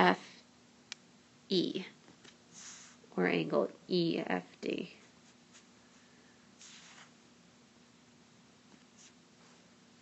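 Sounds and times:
faint steady hum: 0.0 - 10.0
pen scratching on tablet: 6.6 - 7.1.

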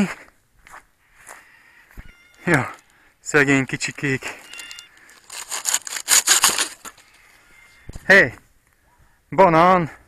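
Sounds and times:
blade sawing through stalk: 3.9 - 7.0.

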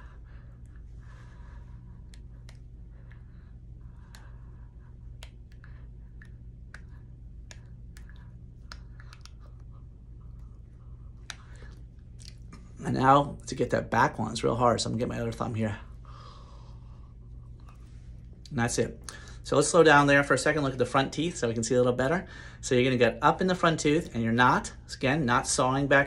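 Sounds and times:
low steady hum: 0.0 - 26.0
floss clicking between teeth: 1.9 - 10.6
wet mouth sounds: 5.0 - 12.7.

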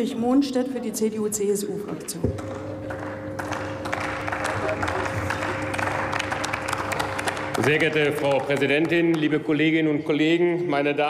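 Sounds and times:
people clapping: 2.4 - 9.8.

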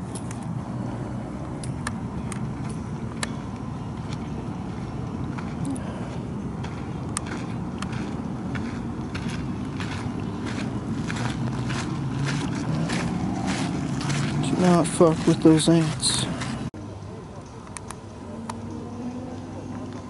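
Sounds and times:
gravel crunching underfoot: 2.6 - 16.7.

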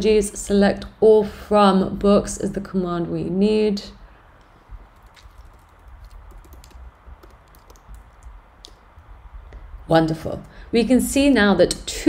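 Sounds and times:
computer keyboard keystrokes: 5.0 - 8.3.

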